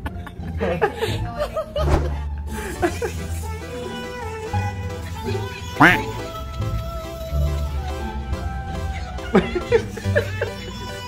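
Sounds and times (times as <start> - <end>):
bouncy background music: 0.0 - 11.0
quack-like squawk: 5.8 - 6.2.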